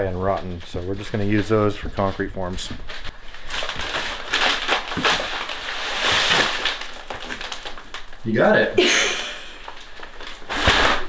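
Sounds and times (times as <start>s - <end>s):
paper sacks rustling and scraping: 2.9s - 7.7s, 9.6s - 11.0s.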